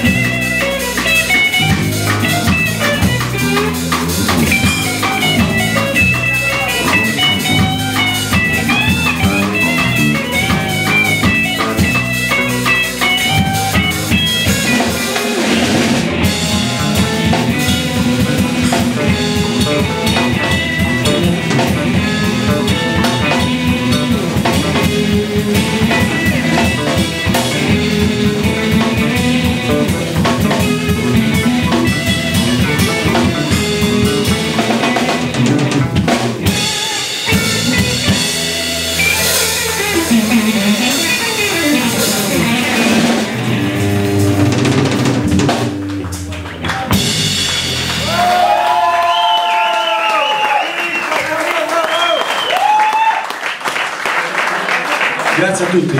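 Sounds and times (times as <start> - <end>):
electric bass: 0.0 - 50.0
electric guitar: 0.0 - 51.0
drum kit rhythm: 0.0 - 55.9.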